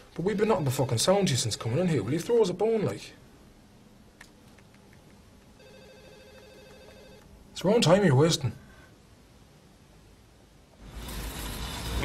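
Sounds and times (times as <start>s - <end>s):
faint telephone ring: 5.6s - 7.3s.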